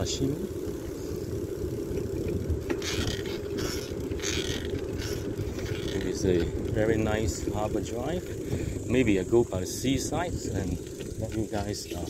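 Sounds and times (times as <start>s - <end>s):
bicycle tyres rumbling on road: 0.0s - 12.0s
wind buffeting microphone: 0.0s - 12.0s.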